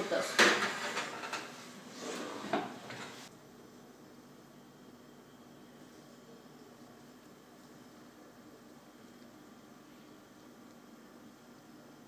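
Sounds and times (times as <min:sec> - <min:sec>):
baking tray clattering into oven: 0:00.1 - 0:01.6.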